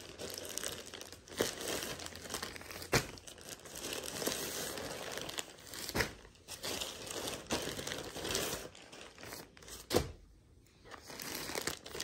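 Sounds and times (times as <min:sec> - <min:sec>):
plastic bags crinkling: 0:00.0 - 0:10.2, 0:10.8 - 0:12.0.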